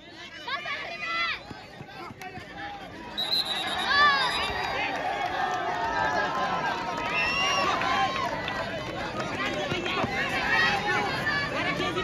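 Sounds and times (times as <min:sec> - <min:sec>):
crowd shouting: 0:00.2 - 0:12.0.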